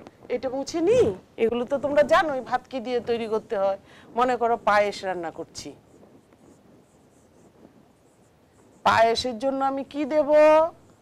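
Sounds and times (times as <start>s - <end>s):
marker pen scratching on whiteboard: 4.2s - 11.0s.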